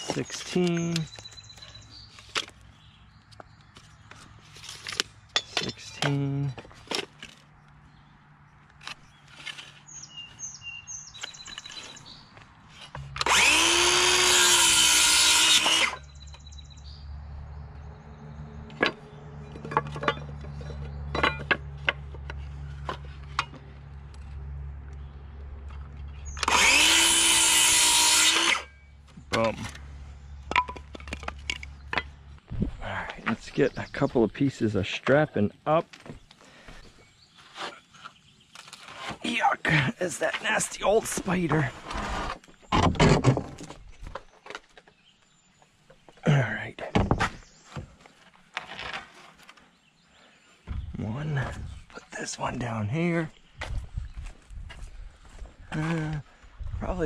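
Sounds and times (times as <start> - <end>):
circular saw cutting wood: 12.9 - 16.1, 26.3 - 28.8.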